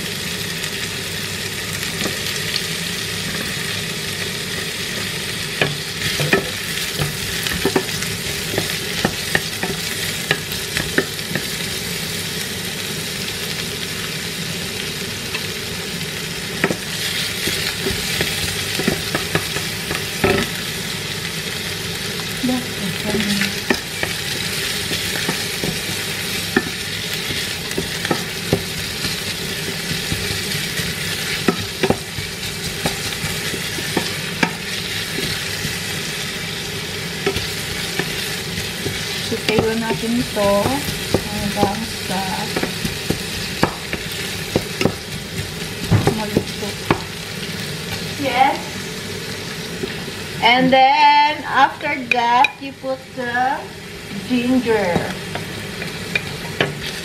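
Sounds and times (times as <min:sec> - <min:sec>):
garlic and onion sizzling in oil: 0:00.0 - 0:57.0
wooden spatula knocking on pot: 0:31.4 - 0:34.6, 0:38.8 - 0:47.1.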